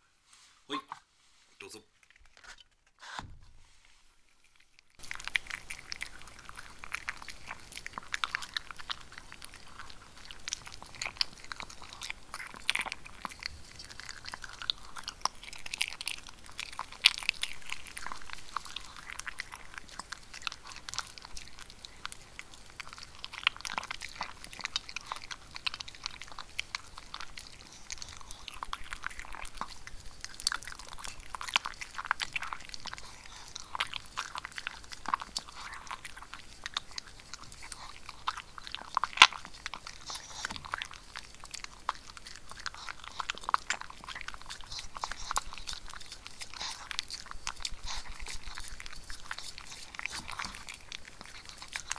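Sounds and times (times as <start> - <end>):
dog crunching dry kibble: 1.9 - 3.0, 4.1 - 51.9.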